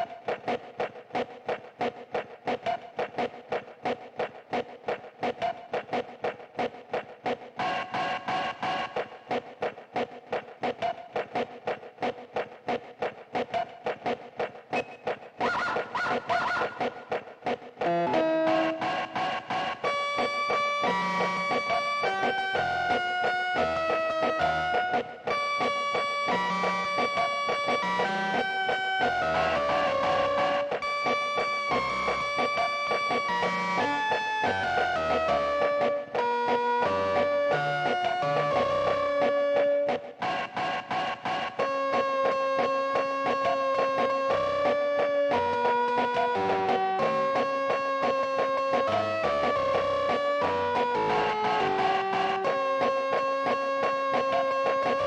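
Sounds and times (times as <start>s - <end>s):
electronic keyboard playing: 14.8s - 55.0s.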